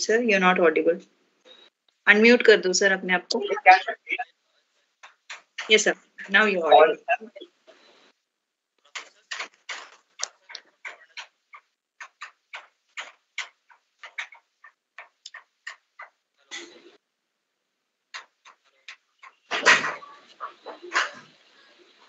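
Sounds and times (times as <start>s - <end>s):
choppy broken-up microphone audio: 0.0s - 13.2s, 15.1s - 17.0s, 18.2s - 22.0s.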